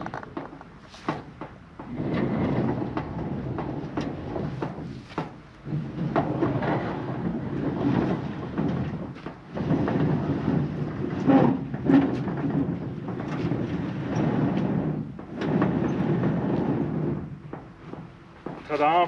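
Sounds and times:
loud knocks: 0.0 - 19.0
sliding barn door grinding: 0.0 - 19.0.

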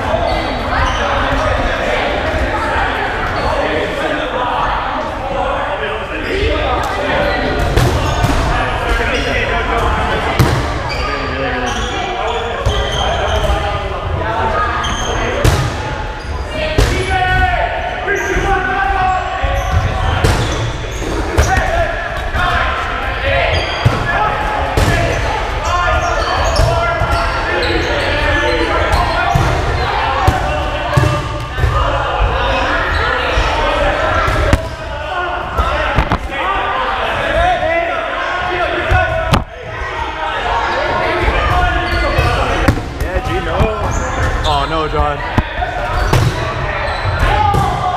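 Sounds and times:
balls bouncing on wooden floor: 35.9 - 36.3, 39.0 - 39.6.

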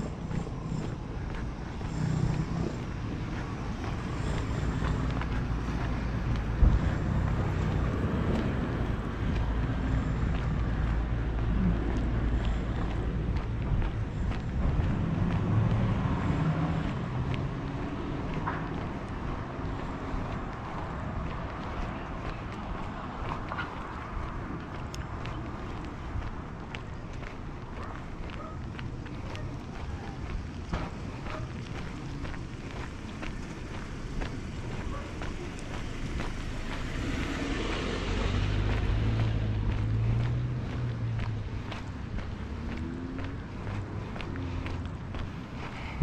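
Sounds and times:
vehicle traffic rumble: 0.0 - 46.0
wind buffeting microphone: 0.0 - 46.0.

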